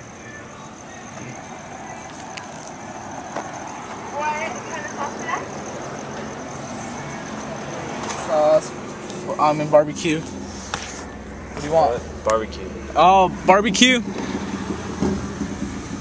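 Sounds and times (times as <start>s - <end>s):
faint voices: 0.0s - 10.3s.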